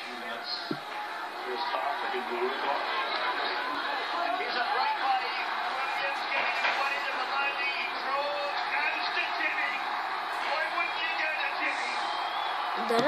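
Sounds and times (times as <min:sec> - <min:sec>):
overlapping chatter of voices: 0:00.0 - 0:13.0.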